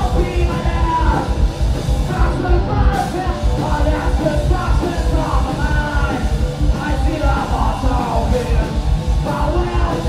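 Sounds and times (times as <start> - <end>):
distorted electric guitars: 0.0 - 10.0
fast drumming: 0.0 - 10.0.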